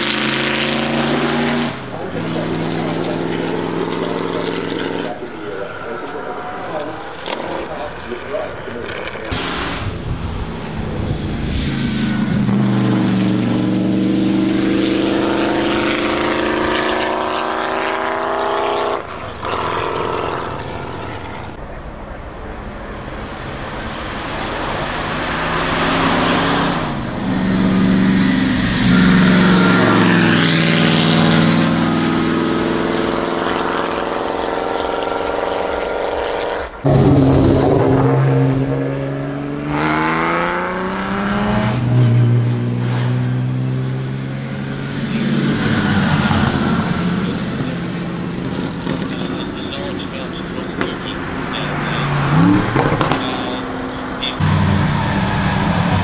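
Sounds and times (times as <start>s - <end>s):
racing car engine accelerating: 0.0s - 56.0s.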